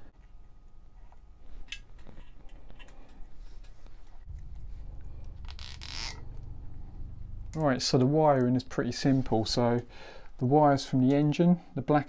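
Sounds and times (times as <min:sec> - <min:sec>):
zip tie ratcheting tight: 0:05.4 - 0:06.3.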